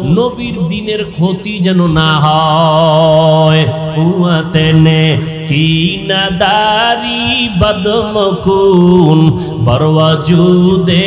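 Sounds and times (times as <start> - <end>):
man chanting sermon: 0.0 - 11.0.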